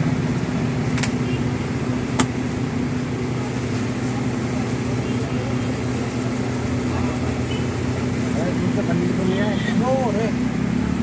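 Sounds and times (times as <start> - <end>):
faint voices: 2.8 - 11.0.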